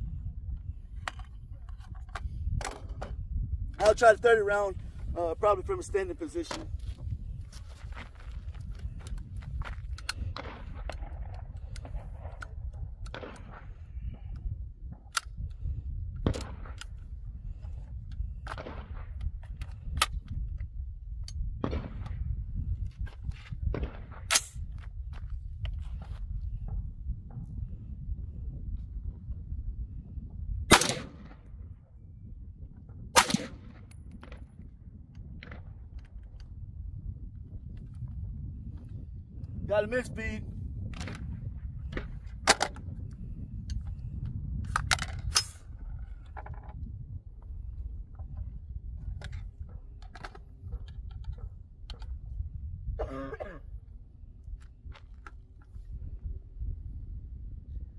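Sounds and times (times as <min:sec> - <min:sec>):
wind rumble on microphone: 0:00.0 - 0:57.9
metallic clicks of rifle handling: 0:01.0 - 0:03.1, 0:08.8 - 0:13.3, 0:15.1 - 0:15.6, 0:42.4 - 0:46.7
rifle shots: 0:30.7 - 0:31.4, 0:33.2 - 0:33.8.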